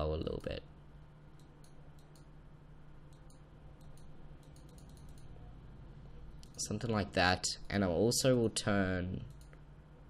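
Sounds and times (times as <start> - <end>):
low steady hum: 0.0 - 10.0
computer mouse clicks: 1.3 - 2.3, 3.1 - 5.4, 6.4 - 6.7, 9.2 - 9.6.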